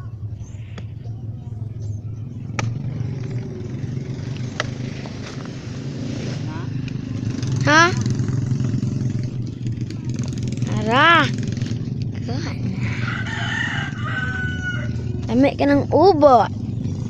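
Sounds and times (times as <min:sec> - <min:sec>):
rooster crowing: 0:12.7 - 0:15.2.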